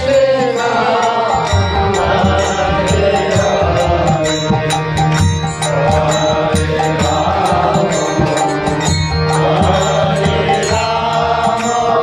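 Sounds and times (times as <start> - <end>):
harmonium chords: 0.0 - 12.0
sharp percussion strikes: 0.0 - 12.0.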